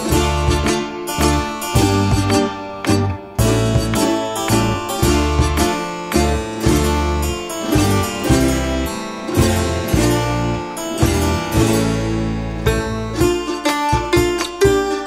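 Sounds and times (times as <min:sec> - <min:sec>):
low bass notes: 0:00.0 - 0:15.0
plucked string melody: 0:00.0 - 0:15.0
strummed acoustic guitar: 0:00.0 - 0:15.0.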